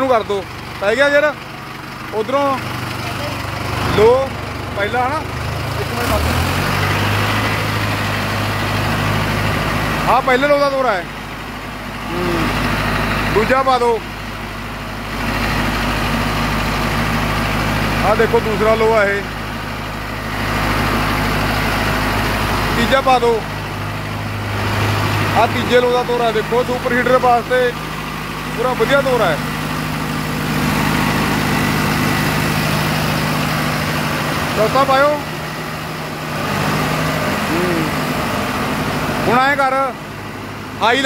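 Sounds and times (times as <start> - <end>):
tractor diesel engine running: 0.0 - 41.0.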